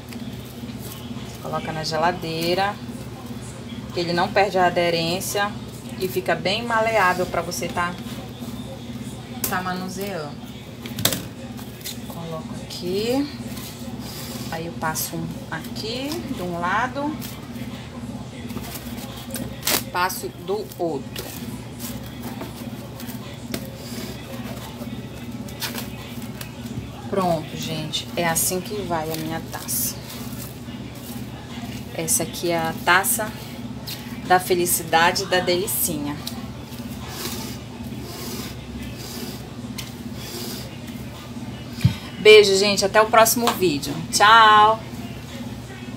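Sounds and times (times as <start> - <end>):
steady low hum: 0.0 - 45.9.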